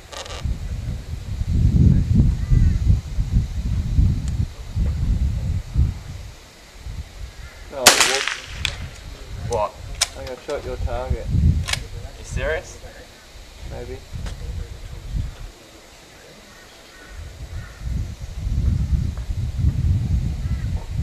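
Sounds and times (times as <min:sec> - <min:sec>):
rifle shot with echo: 0:07.8 - 0:09.0
faint sharp cracks: 0:07.8 - 0:10.6.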